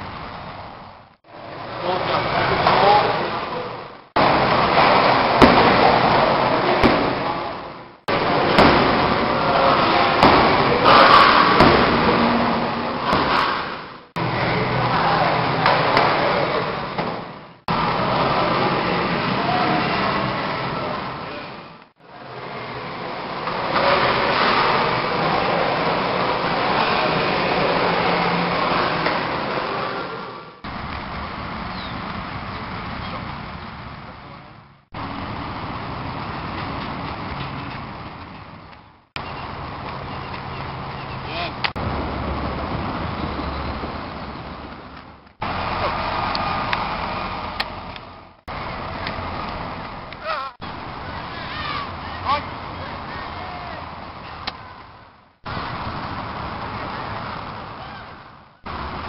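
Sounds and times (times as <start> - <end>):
outdoor voices: 0.0 - 59.0.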